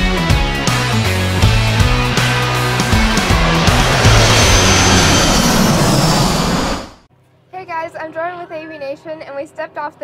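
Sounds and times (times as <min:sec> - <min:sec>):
low music: 0:00.1 - 0:06.3
jet aircraft passing: 0:00.8 - 0:07.1.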